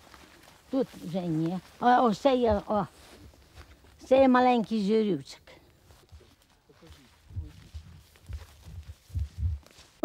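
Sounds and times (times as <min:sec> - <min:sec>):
footsteps on leafy forest floor: 0:00.0 - 0:10.0.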